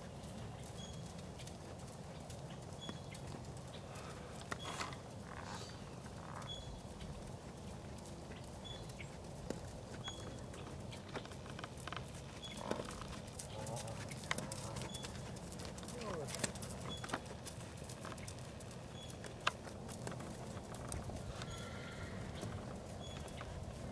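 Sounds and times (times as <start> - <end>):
horse hoofbeats on sand: 0.0 - 23.9.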